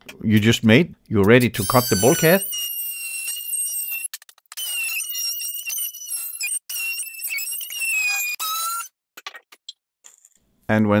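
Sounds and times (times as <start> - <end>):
oscillating multi-tool whine: 1.6 - 8.9.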